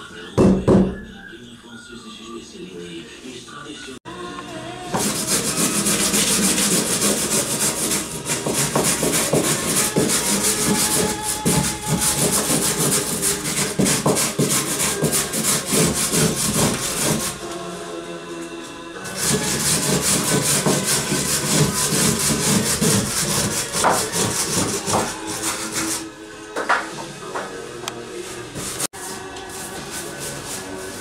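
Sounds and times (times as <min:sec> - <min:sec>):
hand tool scraping wooden beam: 0:05.0 - 0:17.4, 0:19.0 - 0:26.1.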